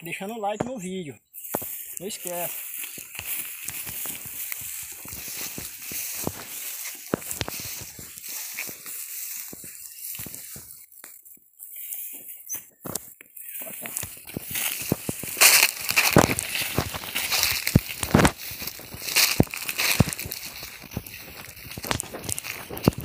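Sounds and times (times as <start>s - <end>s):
footsteps through grass and leaves: 0.0s - 23.0s.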